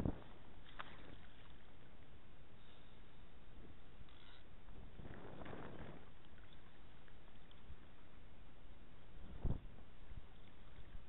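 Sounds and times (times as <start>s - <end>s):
wind rumble on microphone: 0.0s - 1.5s, 4.6s - 8.0s, 9.0s - 11.0s
rippling river water: 0.0s - 11.0s
wind: 0.0s - 11.0s.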